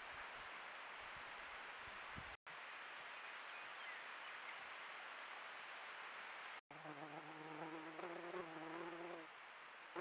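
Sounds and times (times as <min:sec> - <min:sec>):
insect buzzing: 0:06.8 - 0:09.3.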